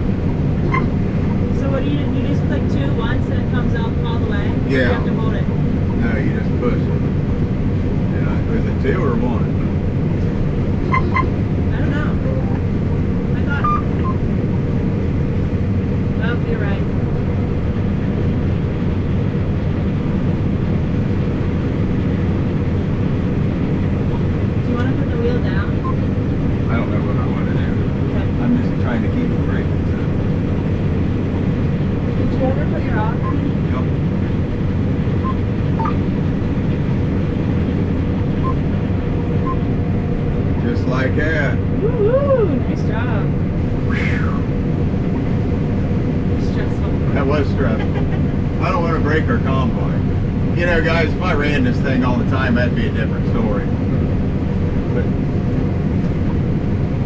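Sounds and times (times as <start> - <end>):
combine harvester engine drone: 0.0 - 57.0.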